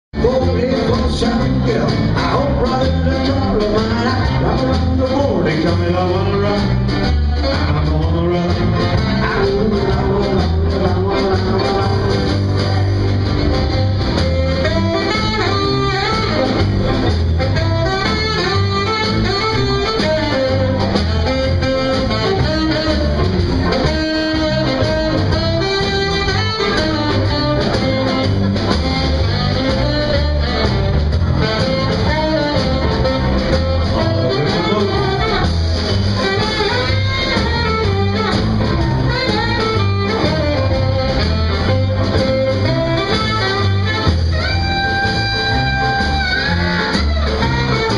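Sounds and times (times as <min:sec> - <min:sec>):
live jazz band playing: 0:00.1 - 0:47.9
woodwind melody: 0:00.2 - 0:47.9.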